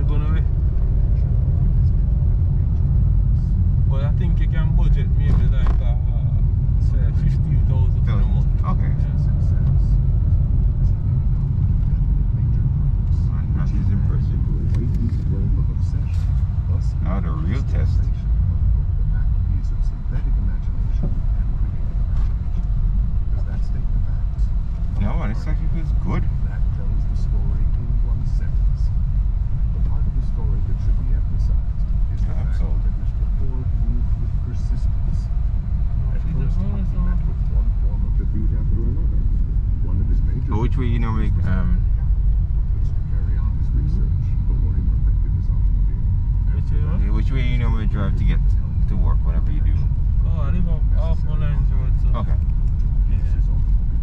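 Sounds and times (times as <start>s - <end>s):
low voices: 0.0s - 53.8s
car cabin road rumble: 0.0s - 54.0s.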